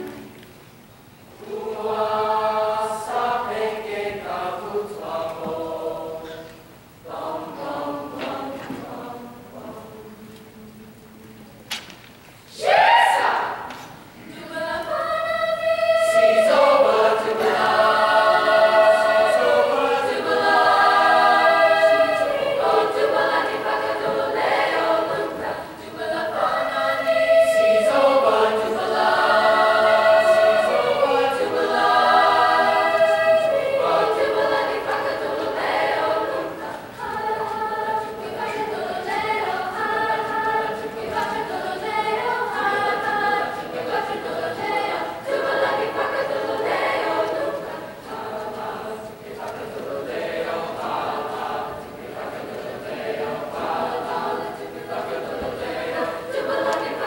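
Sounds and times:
choir singing in parts: 1.3s - 11.4s, 12.5s - 57.0s.

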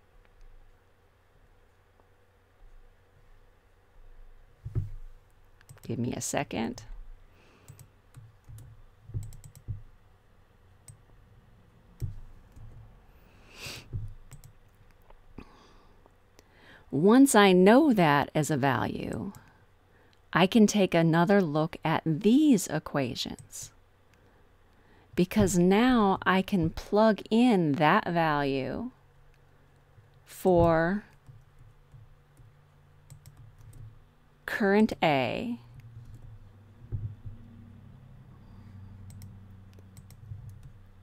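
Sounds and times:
low steady hum: 0.0s - 41.0s
computer mouse and keyboard clicks: 7.6s - 9.9s, 12.0s - 12.8s, 14.0s - 15.1s, 33.1s - 34.0s, 39.0s - 40.8s.

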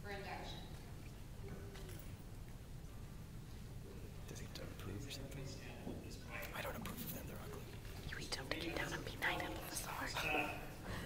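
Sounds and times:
person whispering: 6.5s - 10.6s.

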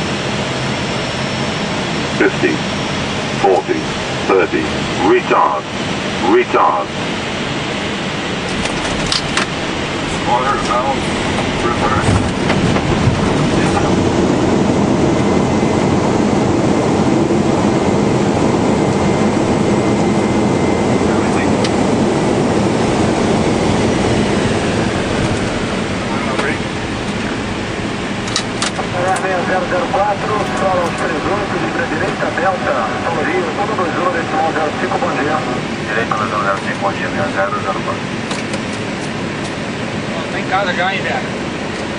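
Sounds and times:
jet engine and runway rolling noise: 0.0s - 41.9s.

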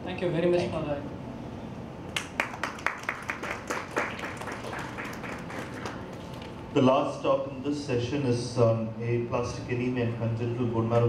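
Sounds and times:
small audience applauding: 2.2s - 6.5s.

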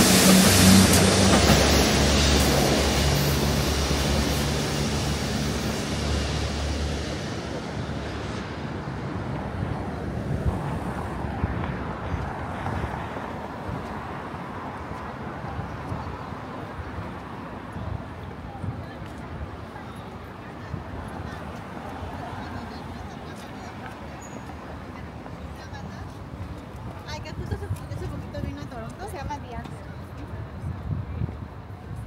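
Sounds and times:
train engine drone: 0.0s - 26.6s
train wheels on tracks: 0.0s - 32.0s.

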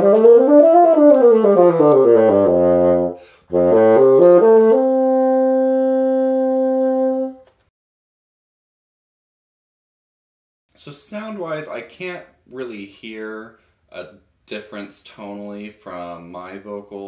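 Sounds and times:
bassoon playing scales: 0.0s - 7.5s.

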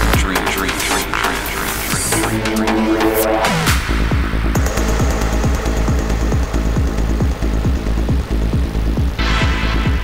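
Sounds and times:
continuous bass: 0.0s - 10.0s
ticking hi-hats: 0.0s - 10.0s.

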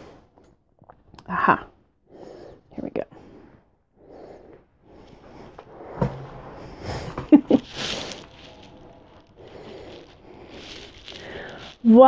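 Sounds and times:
quilt rustling: 6.5s - 12.0s.

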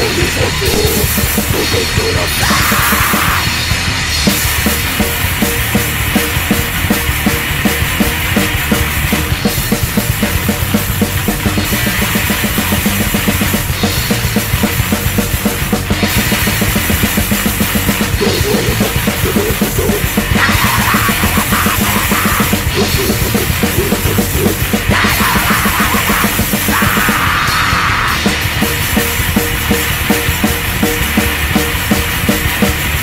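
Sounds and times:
distorted guitar and bass: 0.0s - 33.0s
fast drumming: 0.0s - 33.0s.

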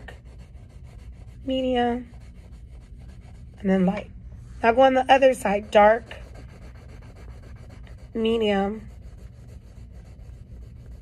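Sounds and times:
pencil shading on paper: 0.0s - 11.0s.

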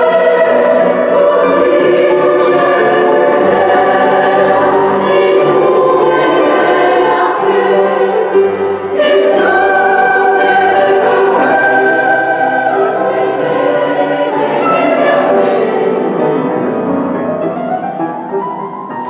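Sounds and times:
mixed choir singing sacred music: 0.0s - 17.2s.

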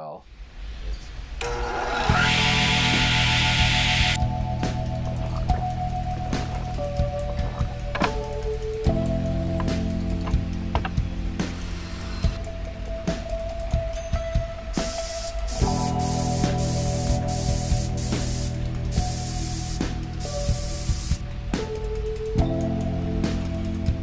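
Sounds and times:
spray-paint can hissing: 14.7s - 21.2s.

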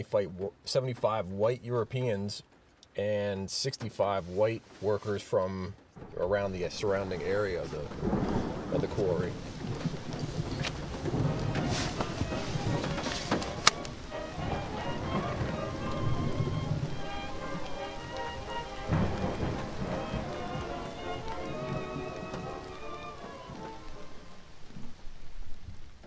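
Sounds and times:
rain: 0.0s - 26.0s
thunder: 6.0s - 24.6s
held musical tones: 6.1s - 24.8s.

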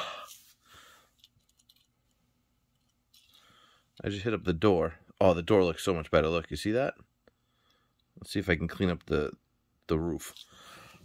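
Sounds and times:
huff of breath: 0.0s - 1.1s.

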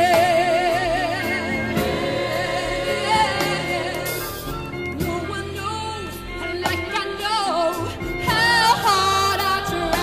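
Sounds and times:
gospel choir singing: 0.0s - 7.2s, 8.2s - 10.0s.

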